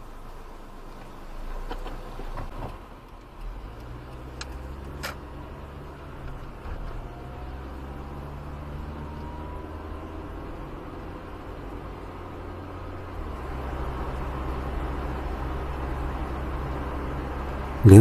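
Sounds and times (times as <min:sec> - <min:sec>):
car pulling away: 0:00.0 - 0:18.0.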